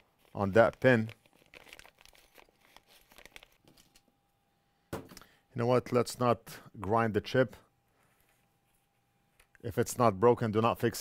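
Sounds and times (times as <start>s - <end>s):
faint small clicks and crinkles: 0.2s - 4.1s.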